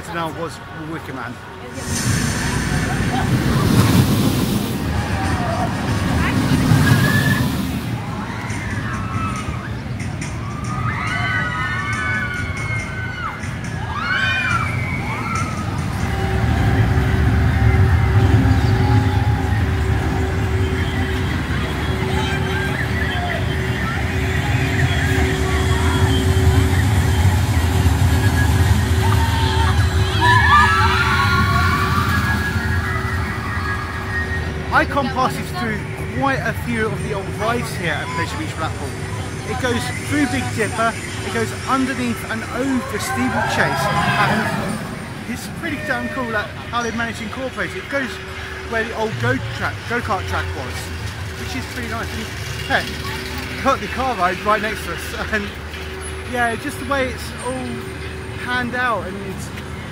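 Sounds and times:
people's voices and shouts: 0.0 - 59.9
roller coaster train rushing rumble: 0.0 - 59.9
steady low rumble: 1.6 - 9.2, 15.0 - 45.8.

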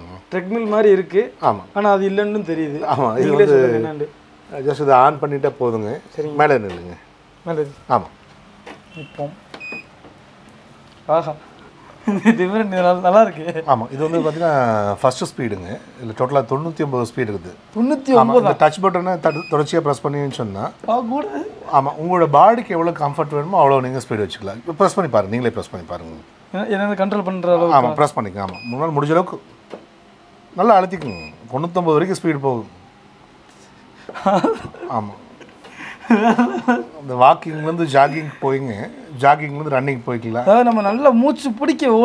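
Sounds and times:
man talking: 0.0 - 8.2, 12.2 - 29.4, 36.8 - 42.0.

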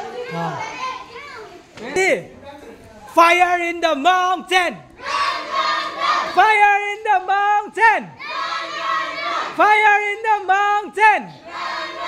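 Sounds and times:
children talking and calling out: 0.0 - 3.1, 4.8 - 7.2, 8.1 - 10.6, 11.2 - 12.0.

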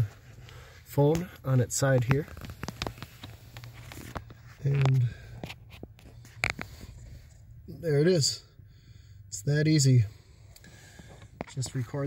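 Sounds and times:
low steady hum: 0.0 - 12.0
phone handling scrapes and clicks: 2.2 - 7.1.

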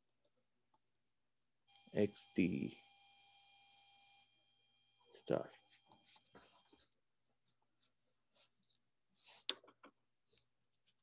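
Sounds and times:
faint high-pitched tones: 1.7 - 7.0.

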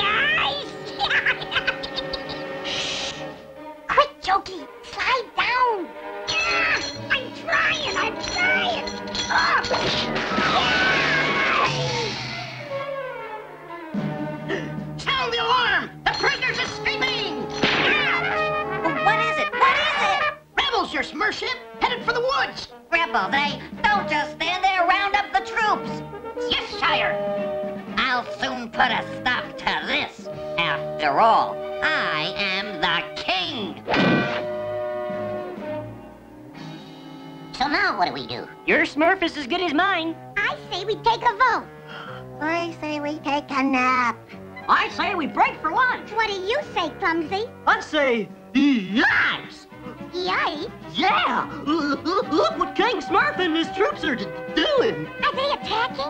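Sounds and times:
cartoon voice: 0.0 - 2.9, 3.9 - 12.2, 15.0 - 20.9, 48.9 - 52.8
background music: 0.0 - 56.0
cartoon crash sound effect: 9.8 - 12.8, 17.6 - 18.5, 33.9 - 34.5
thunk sound effect: 17.6 - 18.1, 33.9 - 34.6.

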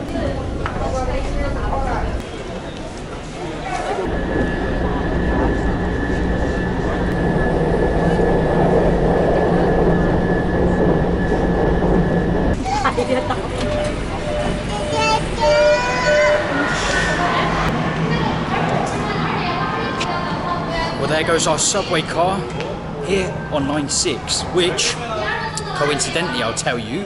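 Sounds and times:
metro train rumble: 0.0 - 26.7
steady hum: 3.9 - 26.1
thin high tone: 4.0 - 18.4.

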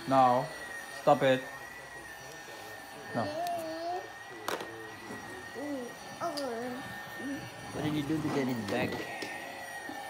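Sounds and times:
toy vacuum cleaner whine: 0.0 - 10.0.

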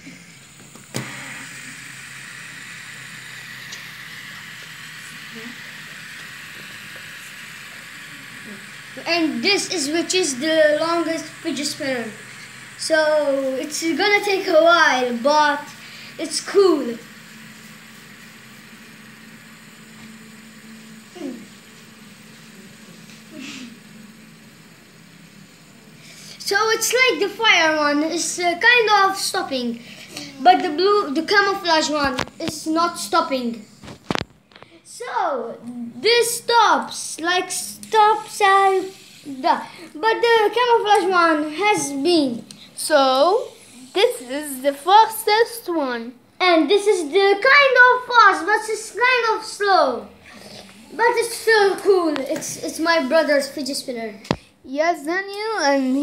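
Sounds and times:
faint steady hum: 0.0 - 56.0
fidget spinners whirring: 0.0 - 56.0.

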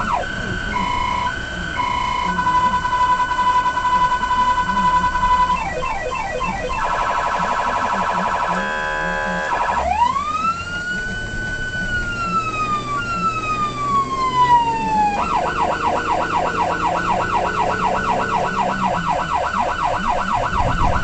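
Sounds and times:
fire engine electronic siren: 0.0 - 21.0.

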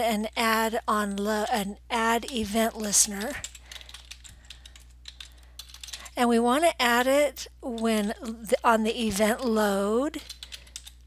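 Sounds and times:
typing on computer keyboard: 2.2 - 6.1, 10.2 - 11.0.

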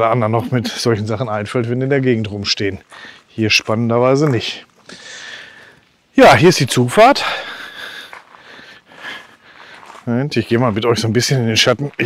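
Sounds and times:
footsteps on gravel: 1.6 - 5.9, 6.7 - 12.0.

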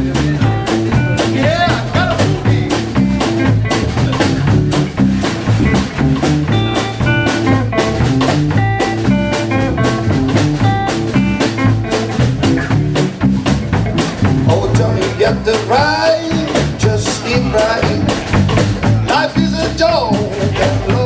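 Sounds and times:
blues band playing: 0.0 - 21.0.

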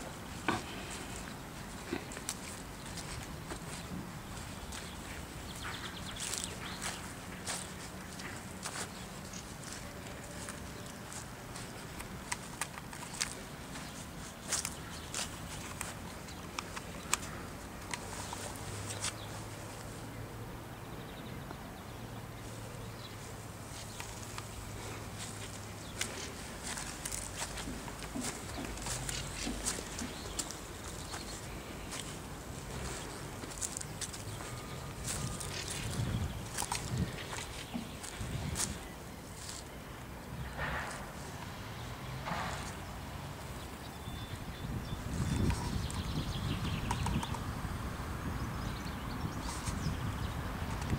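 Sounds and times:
footsteps: 0.0 - 20.0, 23.2 - 39.7, 40.6 - 42.9.

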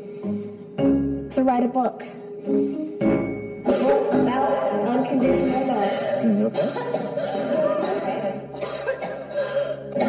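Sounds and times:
background music: 0.0 - 10.0
woman coughing and choking: 3.7 - 10.0.

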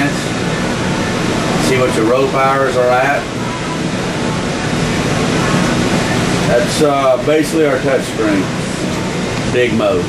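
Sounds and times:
machinery and air-handling noise: 0.0 - 10.0.

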